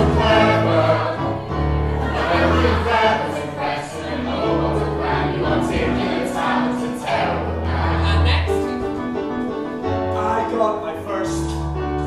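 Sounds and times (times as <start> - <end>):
ensemble singing together: 0.0 - 8.8
instrumental accompaniment: 0.0 - 12.0.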